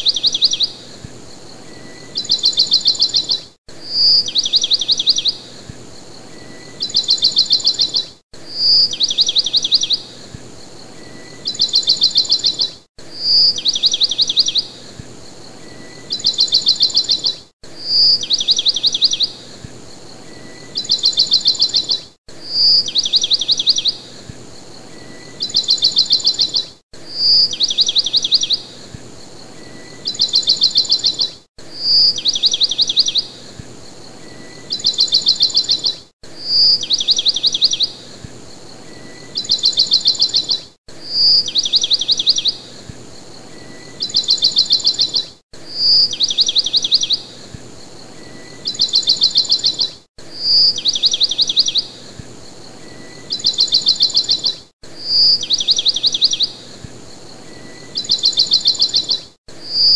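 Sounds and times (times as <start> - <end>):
bird whistle and trill: 0.0 - 0.8, 1.6 - 5.4, 6.3 - 10.2, 10.9 - 14.7, 15.6 - 19.4, 20.2 - 24.1, 24.8 - 28.8, 29.5 - 33.4, 34.2 - 38.0, 38.8 - 47.4, 48.1 - 52.0, 52.8 - 56.7, 57.4 - 59.9.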